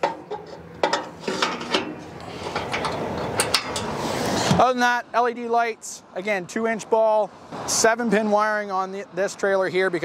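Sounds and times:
metal rubbing: 0:00.0 - 0:04.5.

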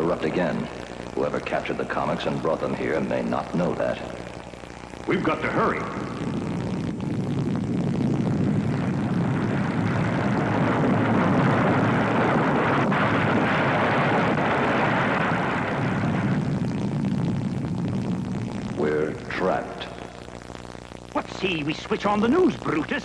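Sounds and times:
engine-like droning rumble: 0:00.0 - 0:23.0.

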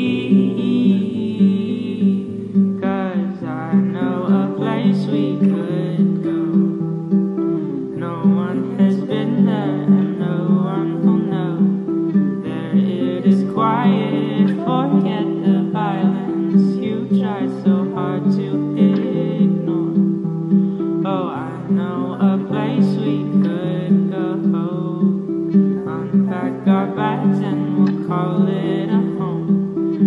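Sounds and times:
man singing: 0:00.0 - 0:06.8, 0:07.5 - 0:20.2, 0:21.0 - 0:30.0
strummed acoustic guitar: 0:00.0 - 0:30.0.

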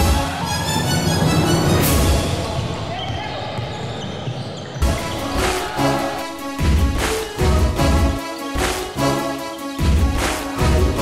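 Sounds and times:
background music: 0:00.0 - 0:02.9, 0:04.8 - 0:11.0.

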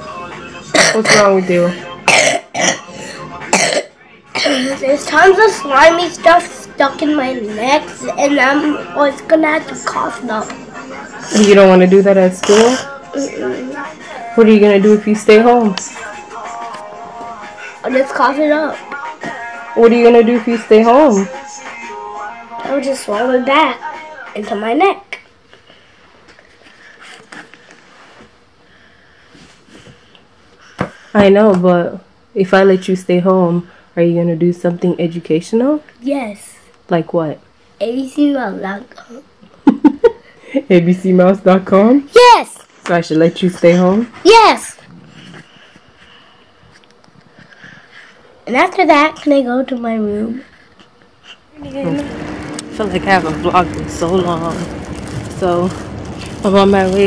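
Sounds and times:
boy clearing his throat: 0:00.7 - 0:01.4, 0:02.0 - 0:02.9, 0:03.5 - 0:04.8
boy speaking: 0:04.4 - 0:10.5, 0:17.8 - 0:18.8, 0:24.4 - 0:25.2, 0:36.0 - 0:36.6, 0:37.8 - 0:39.3, 0:42.1 - 0:42.7, 0:44.2 - 0:44.8, 0:48.5 - 0:50.4, 0:51.5 - 0:54.6
faint rustles: 0:51.6 - 0:57.0.

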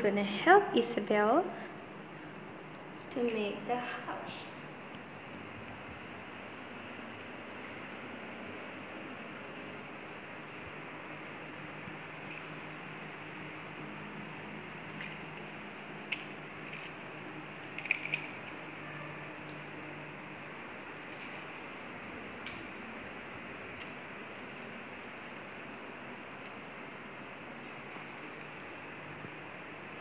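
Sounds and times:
steady background hum: 0:00.0 - 0:30.0
plastic straws being handled: 0:05.7 - 0:29.6.

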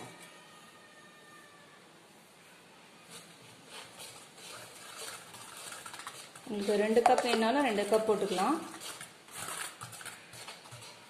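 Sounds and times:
whisk stirring flour in metal bowl: 0:03.0 - 0:11.0
person speaking: 0:06.4 - 0:08.9.

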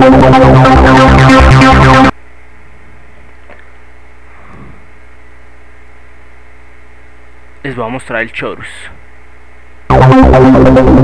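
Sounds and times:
electrical mains hum with hiss: 0:00.0 - 0:11.0.

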